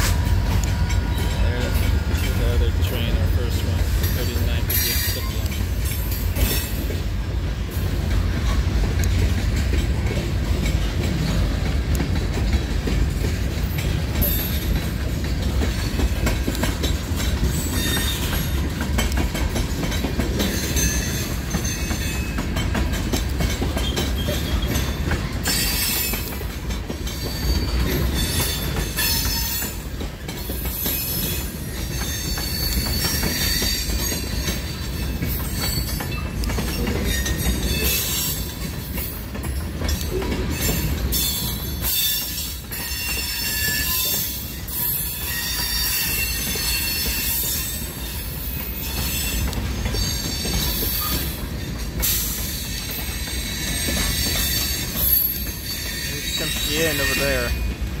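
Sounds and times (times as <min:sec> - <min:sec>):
steel wheels rumbling on rail: 0:00.0 - 0:58.0
high-pitched wheel squeal: 0:52.5 - 0:57.7.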